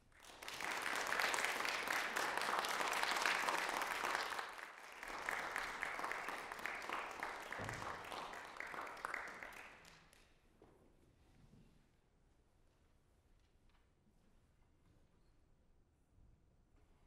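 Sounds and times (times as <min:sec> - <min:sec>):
audience applauding: 0:00.0 - 0:10.2.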